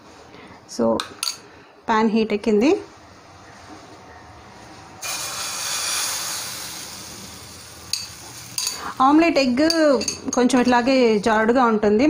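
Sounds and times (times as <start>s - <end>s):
woman talking: 1.9s - 2.9s, 9.0s - 12.0s.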